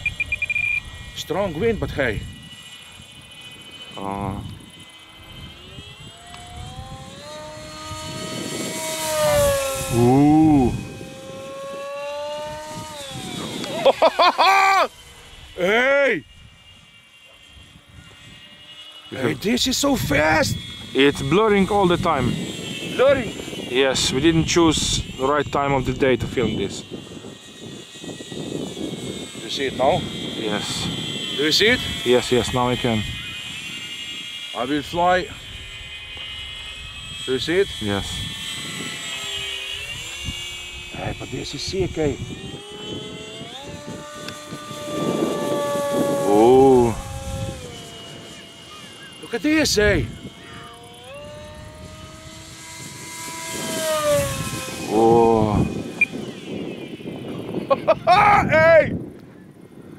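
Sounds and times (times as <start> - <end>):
model plane motor whining: 0.0 - 59.9
person laughing: 13.6 - 14.9, 57.6 - 58.6.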